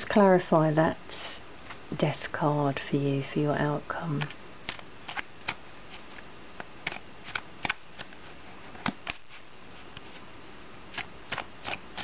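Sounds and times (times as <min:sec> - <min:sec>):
cards being shuffled: 0:04.1 - 0:06.2, 0:06.8 - 0:10.2, 0:10.9 - 0:12.0.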